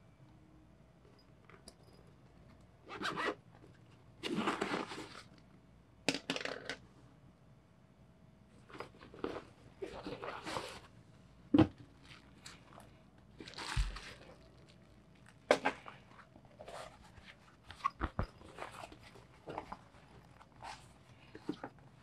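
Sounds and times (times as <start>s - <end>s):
bags rustling: 11.9s - 21.8s.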